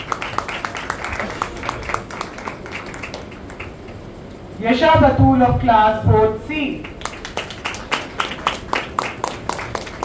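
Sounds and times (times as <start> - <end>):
audience applause: 0.0 - 3.9, 6.9 - 10.0.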